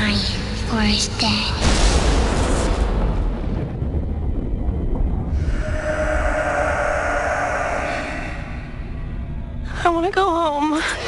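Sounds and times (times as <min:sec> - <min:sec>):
deep low rumble: 0:00.0 - 0:11.0
eerie drone of steady tones: 0:02.8 - 0:11.0.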